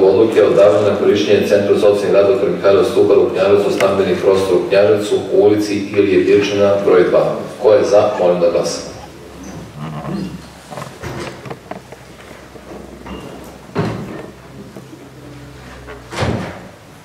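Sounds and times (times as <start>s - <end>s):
faint murmur of voices: 1.8s - 11.8s.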